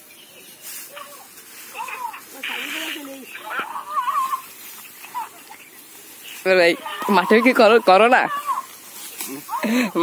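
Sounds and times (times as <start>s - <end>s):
dry straw rustling: 0.0s - 10.0s
faint background voices: 0.1s - 10.0s.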